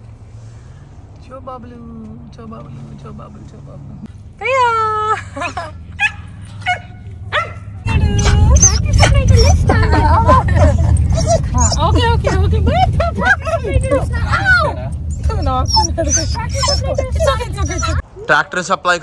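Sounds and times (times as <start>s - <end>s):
dog whining and yipping: 6.0s - 18.0s.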